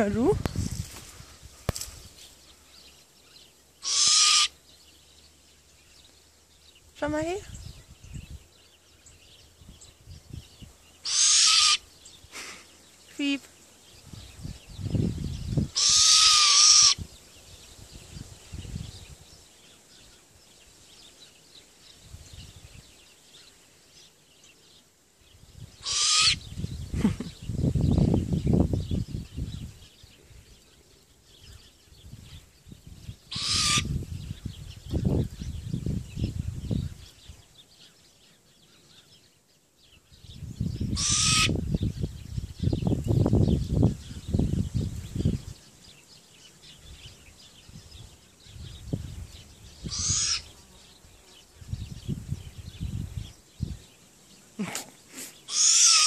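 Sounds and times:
owl hissing screech calls: 3.8 - 4.6, 11.0 - 12.6, 15.7 - 17.1, 25.8 - 26.5, 33.3 - 34.0, 40.9 - 41.6, 49.8 - 50.6, 55.0 - 56.0.

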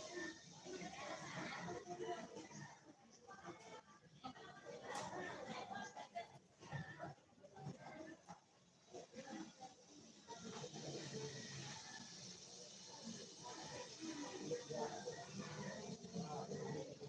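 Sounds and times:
steady hiss: 8.9 - 17.0.

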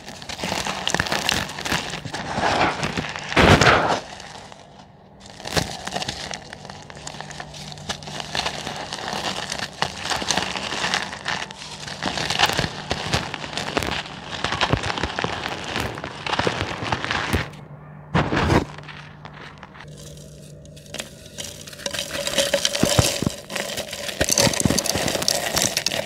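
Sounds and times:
cement crumbling and crunching: 0.0 - 17.6, 18.2 - 26.0.

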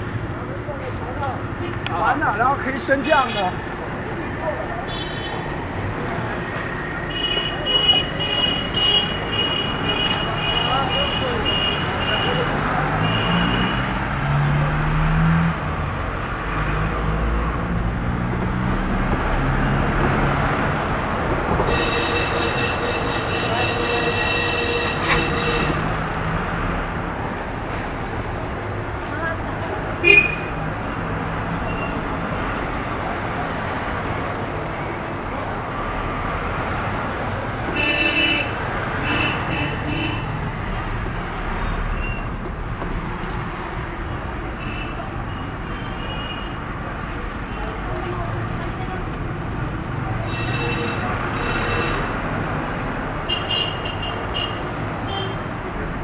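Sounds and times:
road noise: 0.0 - 56.0
vehicle horns blaring: 4.9 - 5.5, 7.1 - 13.9, 21.6 - 25.9, 30.0 - 30.7, 37.7 - 40.4, 50.2 - 52.6, 53.2 - 55.5.

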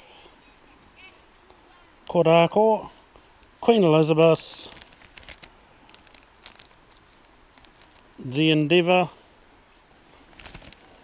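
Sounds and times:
plastic bag crinkling: 4.5 - 8.0, 10.3 - 11.0.

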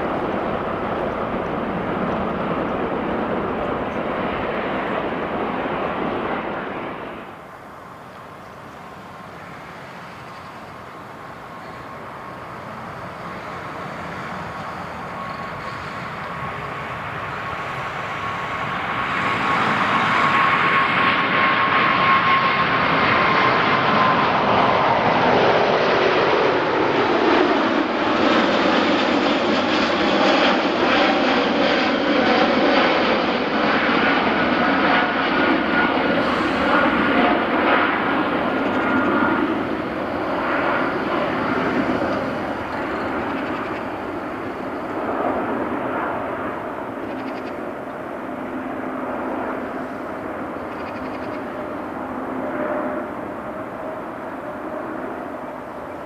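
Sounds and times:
jet engine roar: 0.0 - 56.0
jet engine whine: 0.0 - 56.0.

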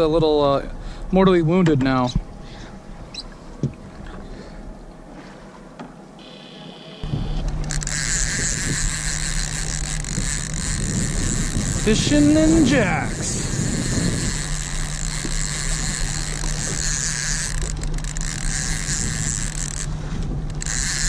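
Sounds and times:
boat engine drone: 0.0 - 21.0
wind and water rushing: 7.0 - 20.7.

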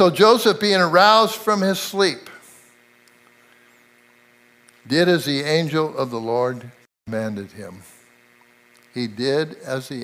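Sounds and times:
man talking: 0.0 - 2.4, 4.9 - 7.9, 9.0 - 10.0
electrical hum: 0.0 - 10.0.

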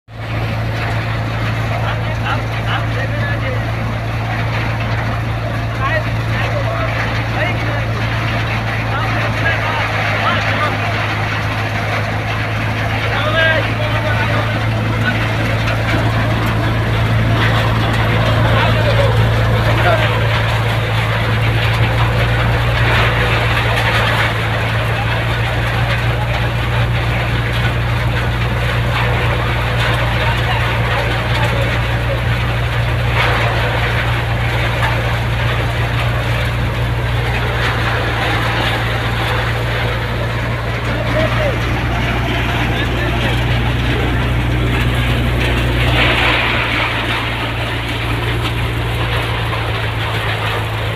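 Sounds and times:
thresher machine drone: 0.1 - 50.9
faint voices: 0.2 - 50.9.

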